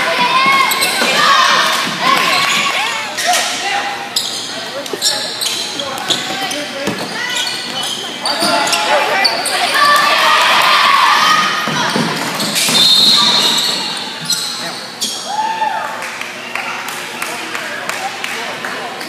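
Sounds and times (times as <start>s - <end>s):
sneakers squeaking on hardwood: 0.2s - 3.5s, 4.1s - 10.1s, 11.2s - 15.3s
basketball bouncing: 5.9s - 7.8s
spectators shouting and cheering: 8.2s - 12.4s, 15.1s - 17.8s.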